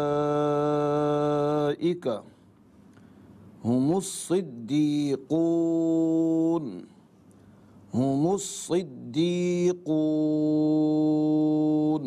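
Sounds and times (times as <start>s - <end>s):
man chanting recitation: 0.0s - 2.4s, 3.6s - 7.0s, 7.9s - 12.0s.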